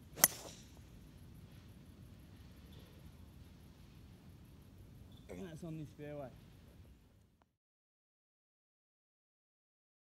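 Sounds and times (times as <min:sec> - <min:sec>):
golf club striking ball: 0:00.1 - 0:00.8.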